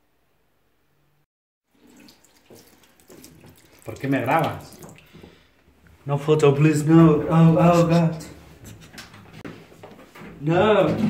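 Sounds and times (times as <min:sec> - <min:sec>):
tap water splashing into sink: 0:01.7 - 0:05.4.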